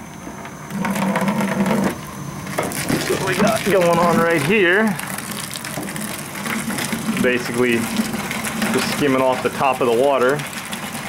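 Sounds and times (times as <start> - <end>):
water gushing into plastic bucket: 2.6 - 11.0.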